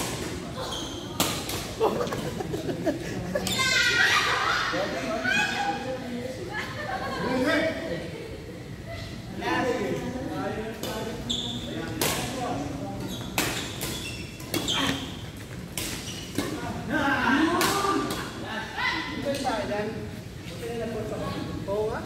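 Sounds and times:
rackets hitting shuttlecock: 1.2s - 1.8s, 11.9s - 12.4s, 13.2s - 16.6s, 17.4s - 18.4s.

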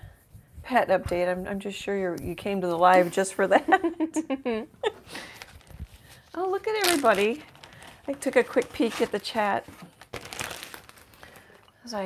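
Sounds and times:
plastic bag crinkling: 5.1s - 12.0s.

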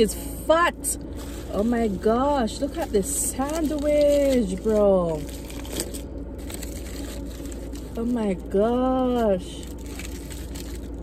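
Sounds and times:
sandwich wrapper crinkling: 1.0s - 11.0s.

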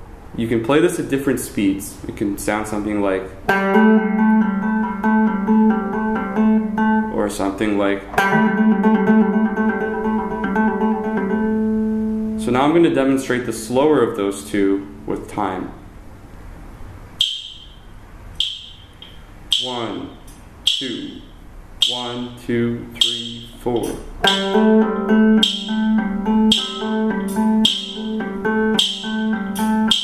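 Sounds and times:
electric guitar blues trill: 3.5s - 7.2s, 8.0s - 12.5s, 24.1s - 30.0s
metronome beeping: 17.2s - 30.0s.

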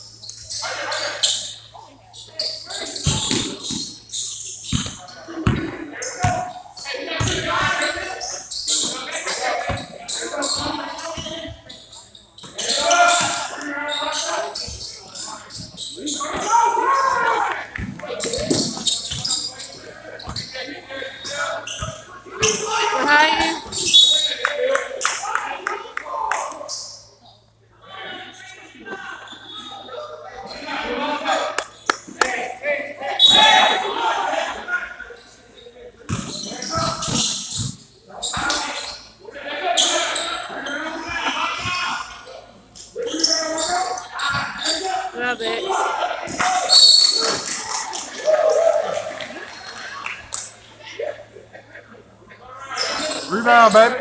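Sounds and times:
spectators talking and shouting: 0.0s - 54.0s
voices calling out: 0.0s - 54.0s
ball bouncing on hardwood court: 4.7s - 6.4s.

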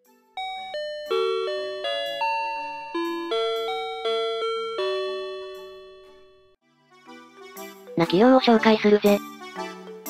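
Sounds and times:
electronic door chime melody: 0.4s - 6.6s.

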